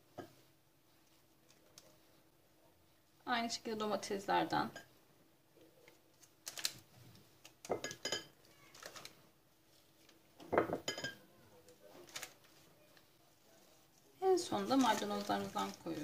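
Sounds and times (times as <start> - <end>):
paper crinkling: 5.8 - 7.7, 8.4 - 10.2, 11.7 - 16.0
light clinks on glass dish: 10.6 - 11.2.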